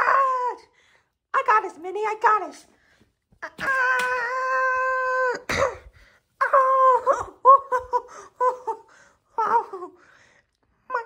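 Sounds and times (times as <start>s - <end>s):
person wailing: 3.4s - 10.0s.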